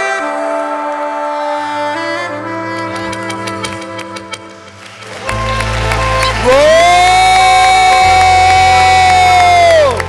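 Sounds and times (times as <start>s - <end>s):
hand claps: 3.0s - 10.0s
person whooping: 4.6s - 10.0s.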